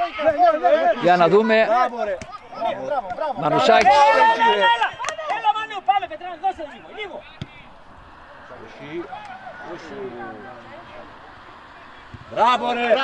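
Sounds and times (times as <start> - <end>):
crowd shouting: 0.0 - 13.0.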